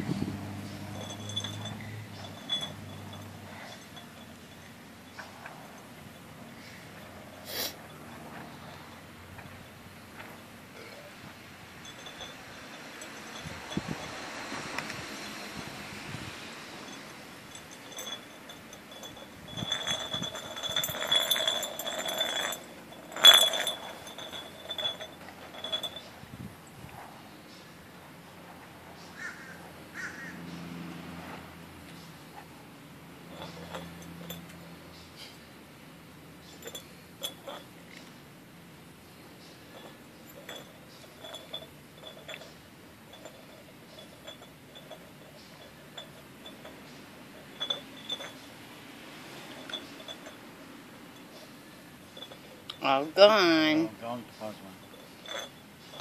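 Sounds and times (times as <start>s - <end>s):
jar rolling on concrete: 0.0s - 15.6s, 16.7s - 26.2s, 33.2s - 34.8s, 36.4s - 38.1s, 39.6s - 56.0s
jar clinking on ground: 0.7s - 15.6s, 16.8s - 26.2s, 33.2s - 35.3s, 36.4s - 38.1s, 39.4s - 48.7s, 49.3s - 56.0s
glass jar knocking on concrete: 0.8s - 4.7s, 17.5s - 26.0s.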